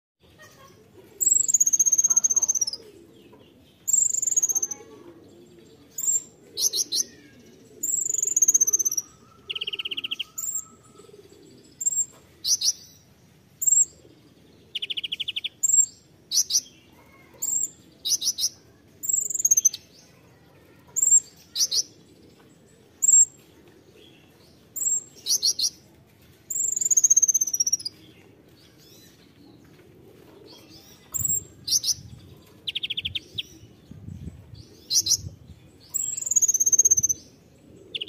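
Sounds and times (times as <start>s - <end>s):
sunbird singing: 1.2s - 2.9s, 3.7s - 5.0s, 6.0s - 12.9s, 13.6s - 16.8s, 17.4s - 19.9s, 23.0s - 23.4s, 26.5s - 28.0s, 35.9s - 38.0s.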